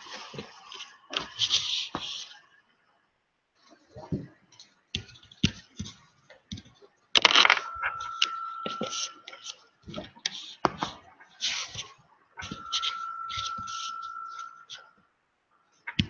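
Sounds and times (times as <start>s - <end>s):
webcam being handled: 7.2s - 9.6s
steady high tone: 7.4s - 9.5s, 12.4s - 14.9s.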